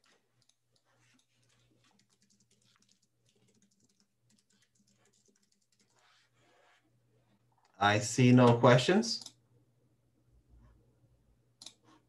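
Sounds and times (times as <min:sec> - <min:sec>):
keyboard typing: 0:00.0 - 0:06.2, 0:11.6 - 0:12.0.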